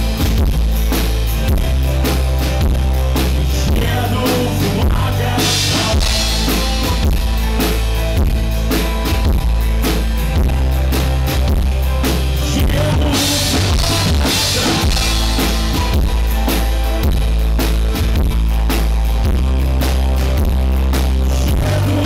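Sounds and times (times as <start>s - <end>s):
drum kit beat: 0.0s - 22.0s
strummed acoustic guitar: 0.0s - 22.0s.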